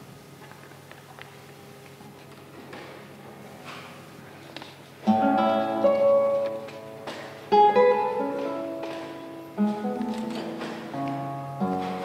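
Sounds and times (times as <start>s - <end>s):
classical guitar playing: 5.0s - 12.0s.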